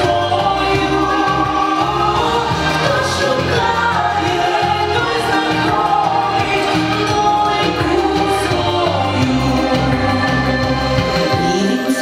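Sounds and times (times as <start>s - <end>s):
bass line: 0.0s - 12.0s
voices singing pop song: 0.0s - 12.0s.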